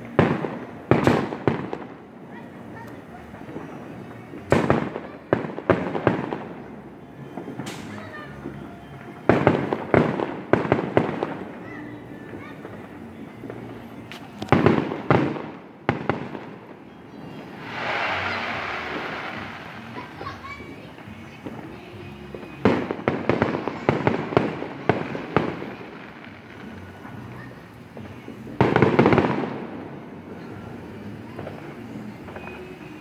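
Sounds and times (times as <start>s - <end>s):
fireworks bangs: 0.0s - 33.0s
fireworks hissing rush: 17.2s - 33.0s.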